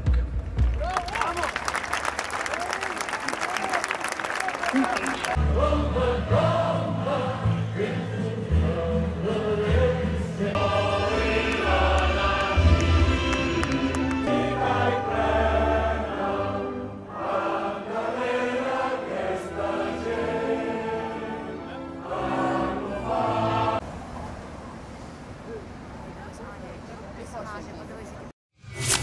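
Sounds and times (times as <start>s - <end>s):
crowd singing together: 5.2s - 23.8s.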